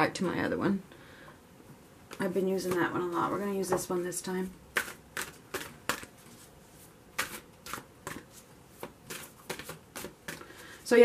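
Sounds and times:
playing cards slapping: 0:04.7 - 0:06.4, 0:07.2 - 0:10.4.

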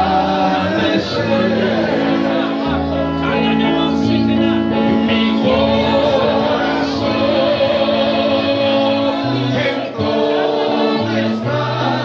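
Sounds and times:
congregation singing a gospel song: 0:00.0 - 0:12.0
sustained chords and bass line: 0:00.0 - 0:12.0.

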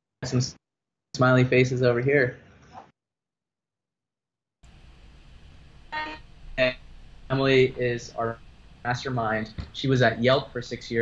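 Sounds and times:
faint room noise: 0:04.6 - 0:11.0
man speaking: 0:06.6 - 0:11.0.

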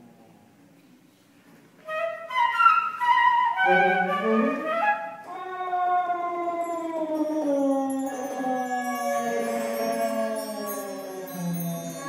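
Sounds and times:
flute: 0:01.8 - 0:12.0
saxophone: 0:03.4 - 0:04.9.

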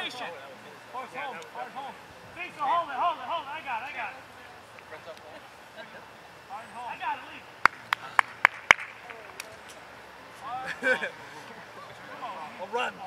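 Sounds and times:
voices shouting outdoors: 0:00.0 - 0:13.0
hand claps: 0:07.6 - 0:09.5.

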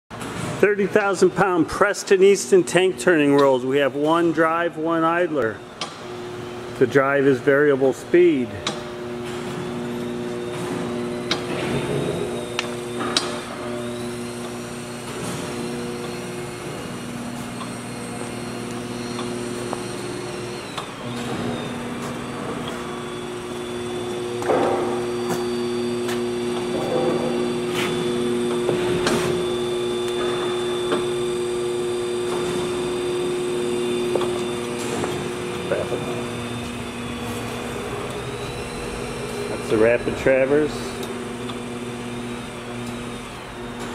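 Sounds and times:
electric motor hum with whine: 0:00.2 - 0:43.9.

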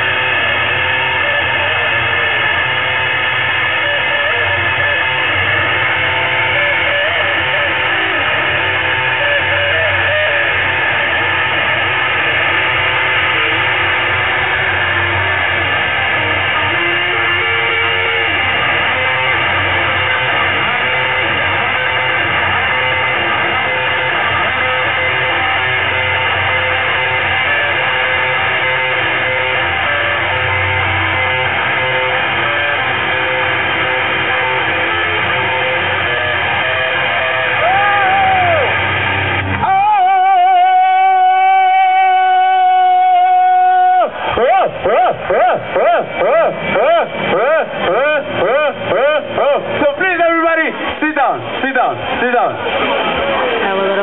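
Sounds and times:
high held tone: 0:00.0 - 0:54.0
rock band playing live: 0:00.0 - 0:54.0.

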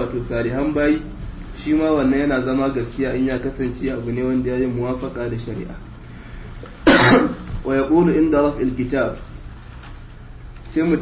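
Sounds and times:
man coughing: 0:06.8 - 0:07.5.

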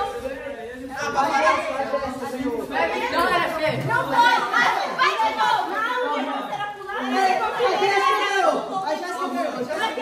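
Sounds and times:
young people talking at once: 0:00.0 - 0:10.0.

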